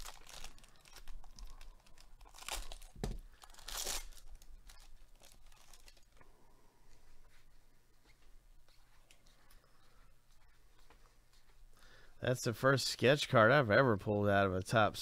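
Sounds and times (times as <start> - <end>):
foil wrapper ripping and crinkling: 0.0 - 6.1
cards rustling: 0.0 - 6.2.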